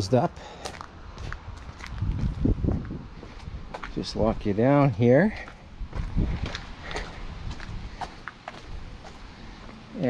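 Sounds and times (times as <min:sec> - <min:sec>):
footsteps on outdoor ground: 0:00.0 - 0:10.0.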